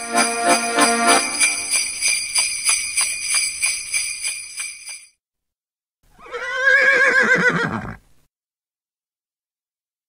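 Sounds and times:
horse whinnying: 0:06.1 - 0:08.0.

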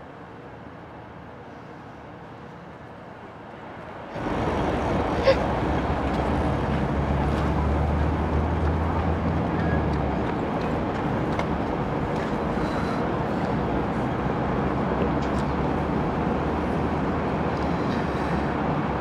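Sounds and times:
traffic noise: 0:00.0 - 0:19.0.

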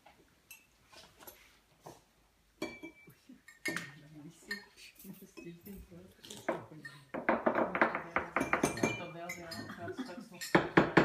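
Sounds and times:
metal spoons clinking on ceramic: 0:00.5 - 0:00.8, 0:02.6 - 0:07.1, 0:08.3 - 0:10.8.

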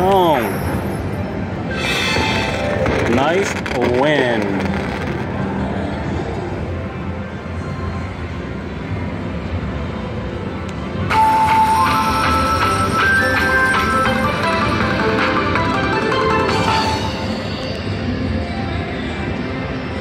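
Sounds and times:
casino machine din: 0:01.7 - 0:05.3, 0:11.2 - 0:17.7
slot machine chime melody: 0:11.1 - 0:18.1.

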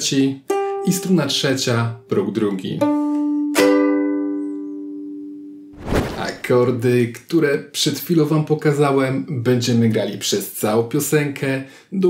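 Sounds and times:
ukulele chord strummed: 0:02.0 - 0:05.6
brief rush of noise: 0:05.8 - 0:06.5.

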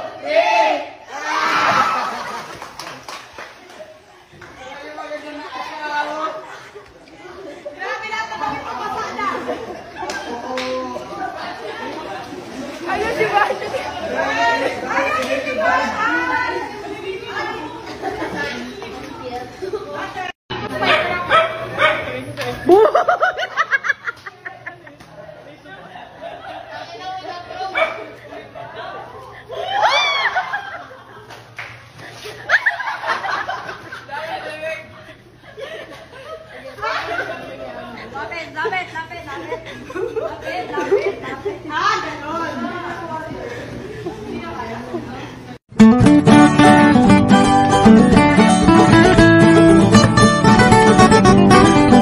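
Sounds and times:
people chattering: 0:00.0 - 0:31.3, 0:32.0 - 0:45.6
people talking and calling out: 0:00.0 - 0:52.0.

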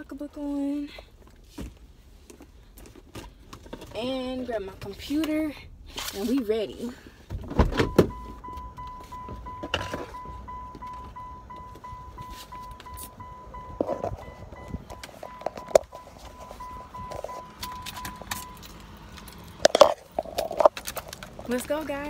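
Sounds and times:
car warning chime beeping: 0:07.8 - 0:19.0.

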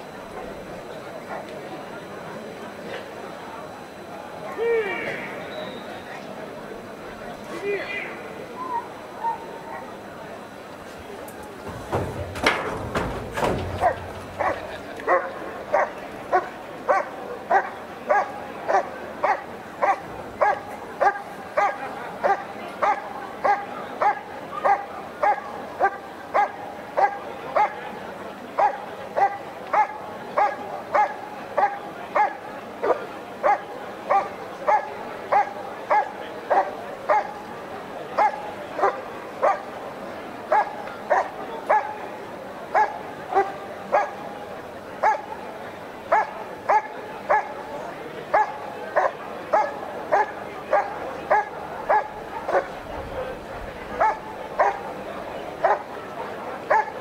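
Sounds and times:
dog barking: 0:13.7 - 0:27.8, 0:28.6 - 0:37.4, 0:38.2 - 0:39.7, 0:40.5 - 0:42.0, 0:42.7 - 0:44.2, 0:45.0 - 0:45.3, 0:46.1 - 0:47.6, 0:48.3 - 0:52.8, 0:54.0 - 0:54.8, 0:55.6 - 0:55.9, 0:56.7 - 0:57.0.

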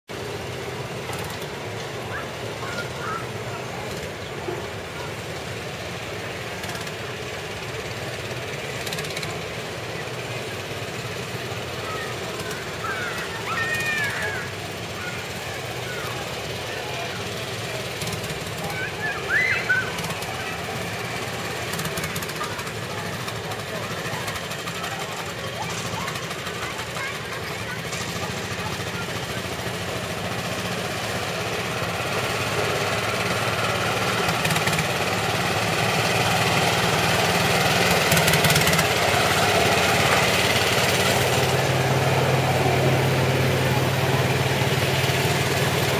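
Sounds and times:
ride car motor humming: 0:00.1 - 0:45.9
small engine rumbling: 0:00.1 - 0:45.9.

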